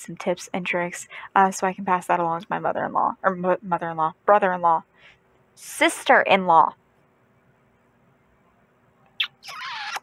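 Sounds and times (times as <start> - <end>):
woman's high-pitched squeak: 9.2 - 10.0.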